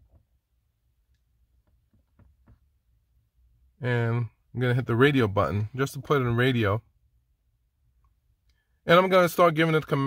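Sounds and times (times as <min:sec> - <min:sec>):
man speaking: 0:03.8 - 0:06.8, 0:08.9 - 0:10.0.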